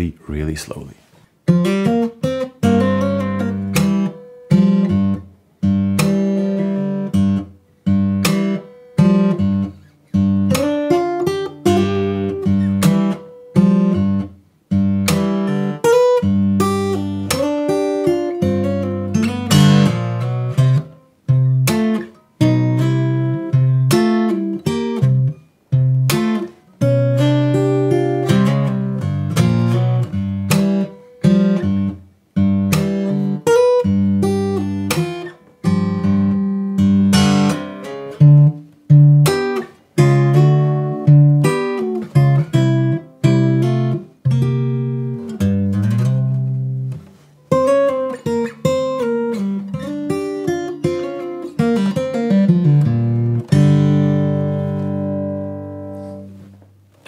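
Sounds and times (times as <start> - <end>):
fingerstyle acoustic blues guitar: 1.2 - 57.0.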